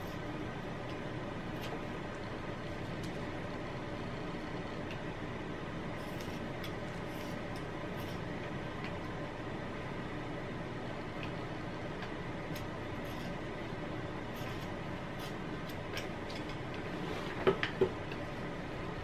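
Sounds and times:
room hum: 0:00.0 - 0:19.0.

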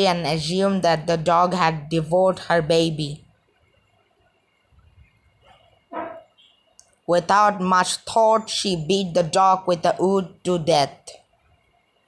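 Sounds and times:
dog barking: 0:05.5 - 0:06.3.

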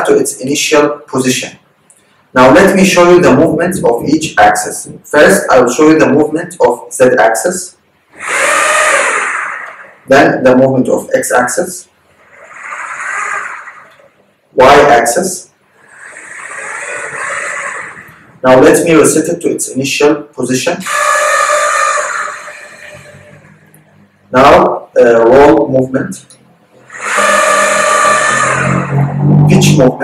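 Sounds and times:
electric linear actuators whining: 0:08.1 - 0:19.6, 0:20.8 - 0:24.7, 0:26.2 - 0:30.0.

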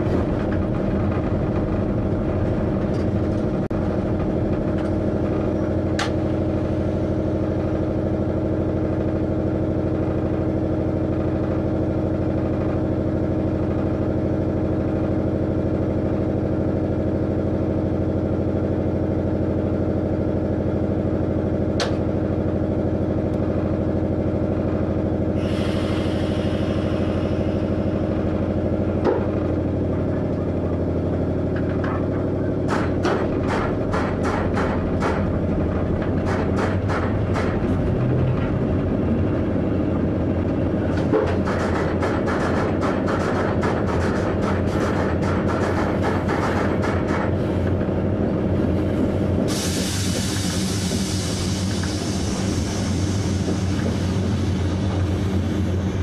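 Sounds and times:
train equipment humming: 0:00.0 - 0:56.0
train rolling noise: 0:00.0 - 0:56.0.

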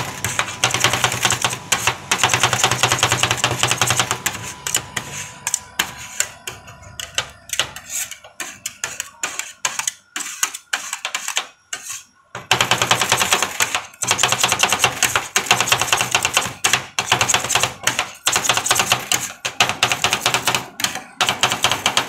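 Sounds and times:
metal spatulas chopping on steel: 0:00.0 - 0:22.0.

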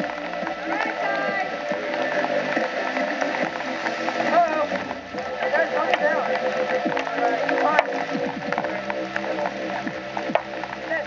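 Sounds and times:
background music: 0:00.0 - 0:11.0
people talking: 0:00.0 - 0:11.0.

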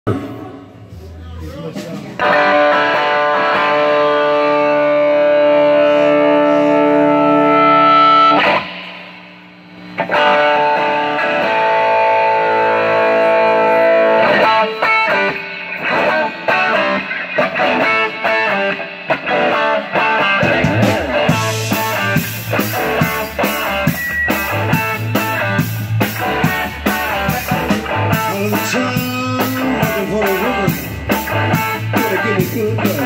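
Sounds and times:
high guitar feedback tone: 0:00.1 - 0:33.0
electric guitar sustained chord: 0:02.4 - 0:28.3.

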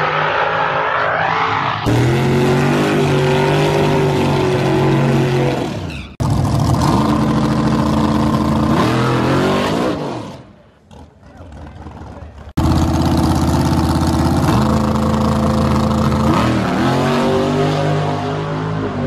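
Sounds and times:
race car engines revving: 0:00.0 - 0:19.0.

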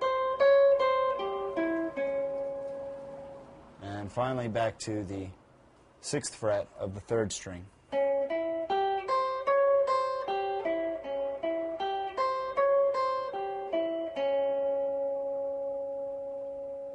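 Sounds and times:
guitar plucked arpeggio: 0:00.0 - 0:03.6, 0:07.9 - 0:16.9.

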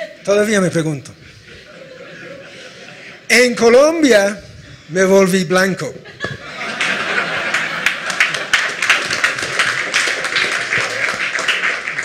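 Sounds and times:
audience applauding: 0:06.6 - 0:12.0.

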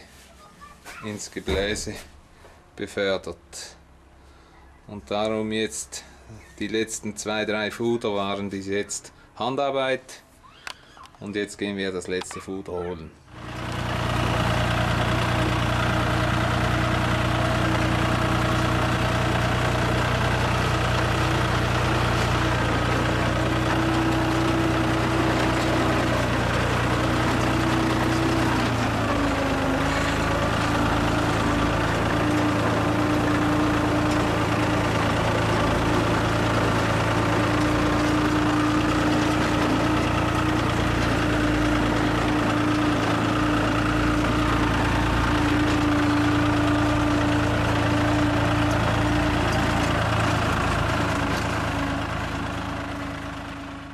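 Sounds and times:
tractor diesel engine under load: 0:13.2 - 0:53.9.

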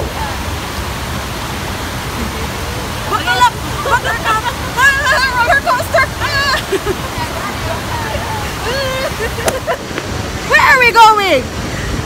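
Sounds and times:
fountain water rushing: 0:00.0 - 0:12.0
people laughing: 0:03.3 - 0:10.0.

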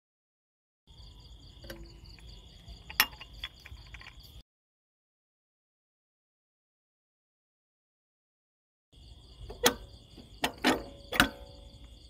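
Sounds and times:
crickets chirring: 0:00.9 - 0:04.4, 0:09.0 - 0:12.0
metal spring clicks: 0:01.6 - 0:04.3, 0:09.5 - 0:11.9.

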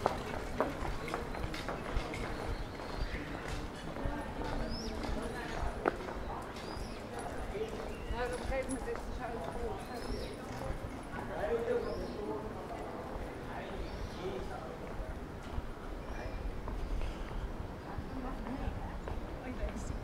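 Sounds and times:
footsteps on brick paving: 0:00.0 - 0:11.6
people talking: 0:00.0 - 0:16.5, 0:17.8 - 0:20.0.

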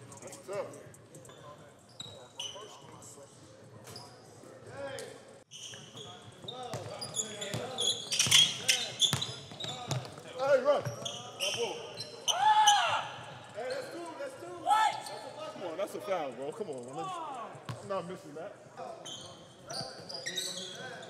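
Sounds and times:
basketballs bouncing on court: 0:05.7 - 0:11.7
loud shout: 0:12.3 - 0:13.2.

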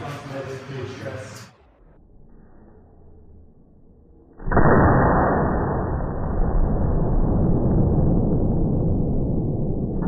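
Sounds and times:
shotgun blast indoors: 0:04.2 - 0:10.0.

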